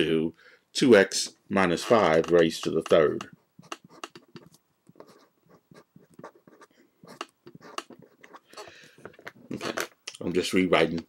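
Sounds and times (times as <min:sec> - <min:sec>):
pen scratching and tapping: 0:01.9 - 0:09.9.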